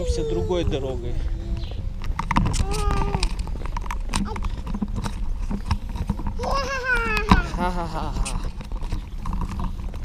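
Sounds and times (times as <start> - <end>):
stroller wheels rattling over bricks: 0.0 - 10.0
toddler singing: 6.4 - 7.5.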